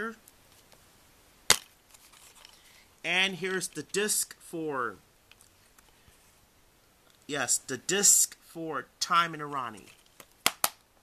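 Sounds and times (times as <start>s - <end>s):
handling rustle: 1.8s - 2.9s
plastic case snapping open: 10.2s - 10.8s.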